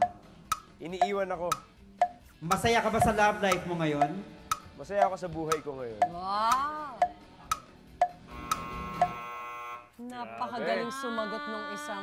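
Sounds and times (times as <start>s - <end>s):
timer ticking: 0.0s - 9.2s
electronic buzzer: 8.3s - 10.0s.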